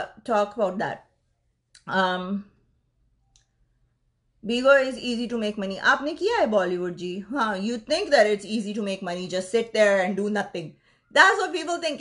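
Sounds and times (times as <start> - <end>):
woman speaking: 0.0 - 1.1, 1.8 - 2.6, 4.4 - 12.0.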